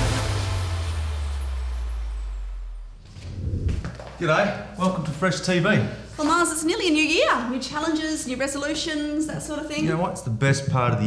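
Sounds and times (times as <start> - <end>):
held low bass note: 1.3 - 4.2
hissing whoosh: 3.0 - 4.0.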